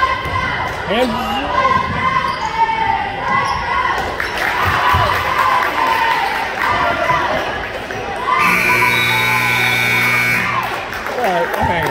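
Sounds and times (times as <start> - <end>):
scoreboard buzzer horn: 8.4 - 10.8.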